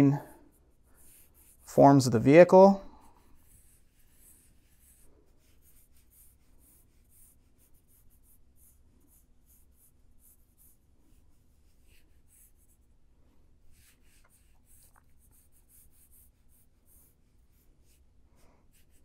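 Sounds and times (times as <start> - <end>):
pencil sketching on paper: 0.0 - 19.0.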